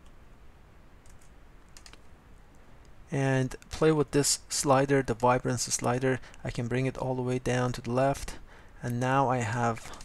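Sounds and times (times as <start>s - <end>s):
low room hiss: 0.0s - 10.0s
computer mouse clicks: 1.0s - 2.1s.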